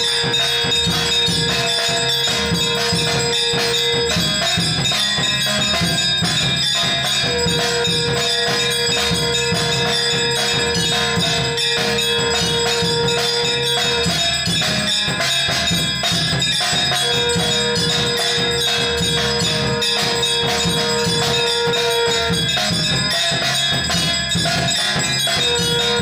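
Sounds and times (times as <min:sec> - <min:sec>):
bells struck in rhythm: 0:00.0 - 0:26.0
drums struck in rhythm: 0:00.0 - 0:26.0
long held note: 0:17.0 - 0:22.6.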